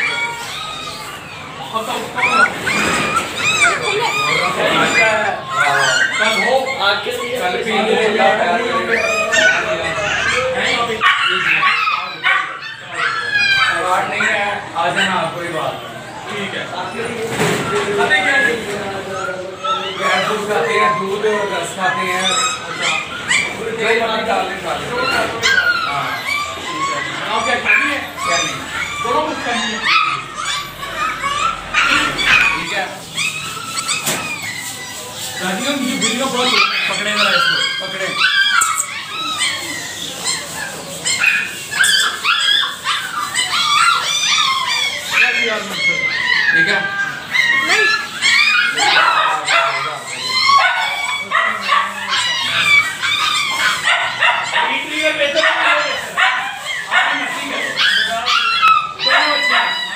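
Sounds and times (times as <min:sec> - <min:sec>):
people talking: 0:00.0 - 0:59.9
puppies barking: 0:00.0 - 0:59.9.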